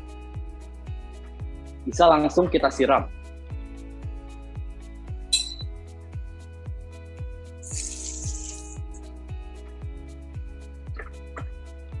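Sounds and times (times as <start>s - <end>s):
background music with beat: 0.0s - 12.0s
short clink: 5.4s - 5.7s.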